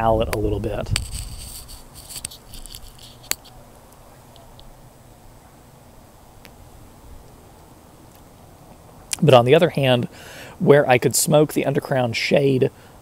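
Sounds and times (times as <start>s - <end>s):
background hiss: 0.0s - 13.0s
small clicks and rustles: 0.3s - 4.7s.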